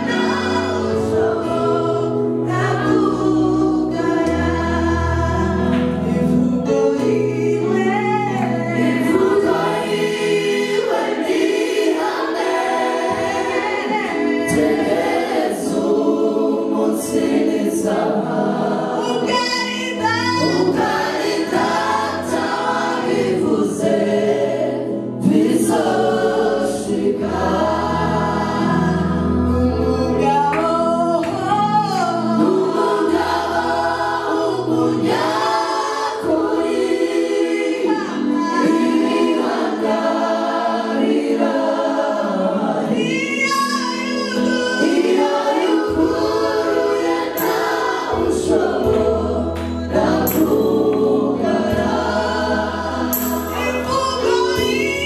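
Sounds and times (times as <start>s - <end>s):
choir singing gospel song: 0.0s - 55.0s.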